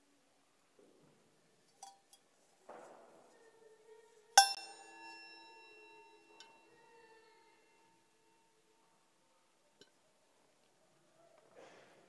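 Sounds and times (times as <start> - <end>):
metal vessel ringing clink: 1.8 - 2.2, 4.4 - 8.0.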